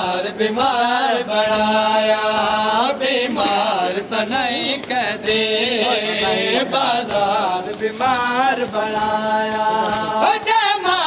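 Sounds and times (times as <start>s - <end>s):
man chanting a lament: 0.0s - 11.0s.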